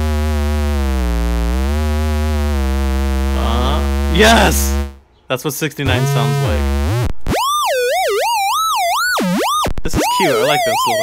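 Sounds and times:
low square-wave oscillator tone: 0:00.0 - 0:05.0, 0:05.9 - 0:11.0.

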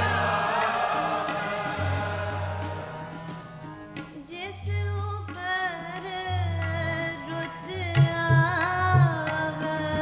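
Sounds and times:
group singing: 0:00.0 - 0:03.8
harmonium chords: 0:00.0 - 0:10.0.

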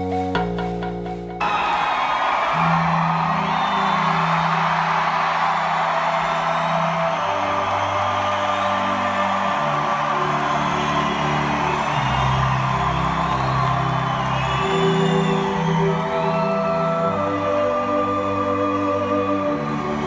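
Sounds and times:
audience whooping and cheering: 0:01.4 - 0:20.0.

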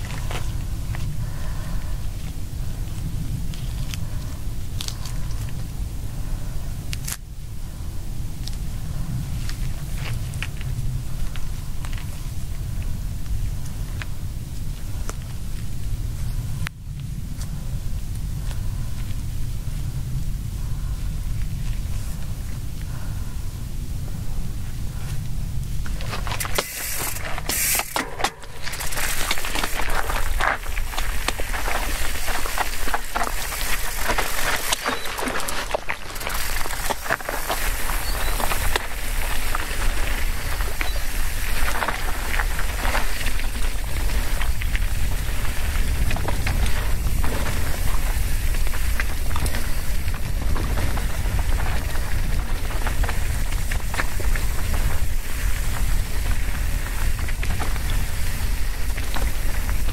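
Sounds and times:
tyres crunching over gravel: 0:00.0 - 0:05.7, 0:25.0 - 0:59.9
wind rumble on microphone: 0:00.0 - 0:59.9
bike clattering over rocks: 0:25.8 - 0:59.9.

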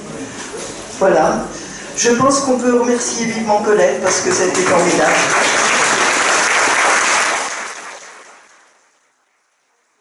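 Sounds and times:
audience applauding: 0:04.1 - 0:08.8.

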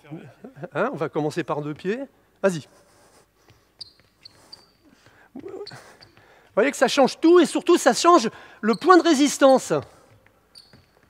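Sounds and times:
sneakers squeaking on hardwood: 0:03.4 - 0:11.0.

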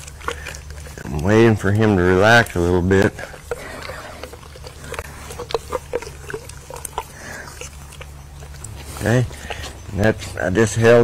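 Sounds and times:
horse licking and chewing: 0:00.0 - 0:11.0.

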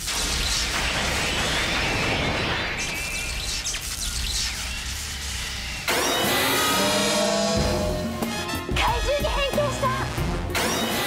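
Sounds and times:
soundtrack music with sustained chords: 0:06.1 - 0:09.3.

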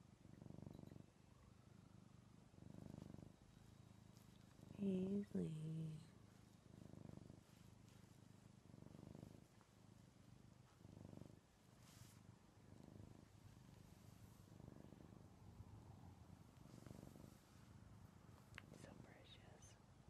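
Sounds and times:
cat purring: 0:00.0 - 0:20.0.

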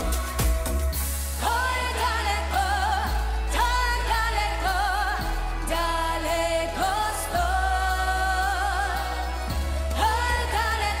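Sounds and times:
bass line: 0:00.0 - 0:11.0
woman singing with vibrato: 0:01.3 - 0:11.0.

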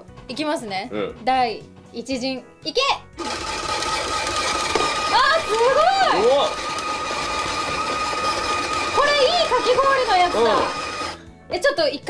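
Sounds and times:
shaved-ice machine motor whine: 0:03.2 - 0:11.2.

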